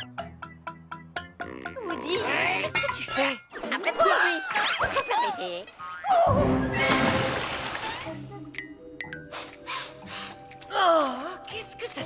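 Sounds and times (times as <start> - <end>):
soft background music: 0.0 - 12.0
cartoon water splash: 6.6 - 8.2.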